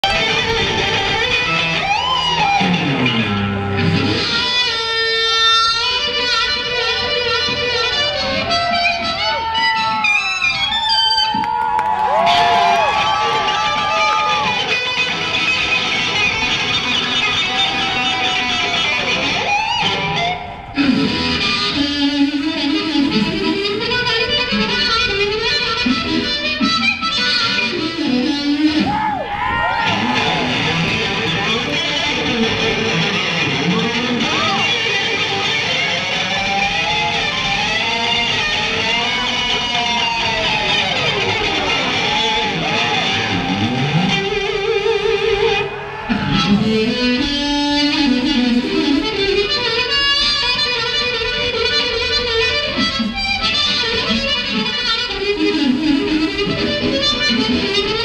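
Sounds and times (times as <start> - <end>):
bass guitar: 0.0 - 58.0
electric guitar solo: 0.0 - 58.0.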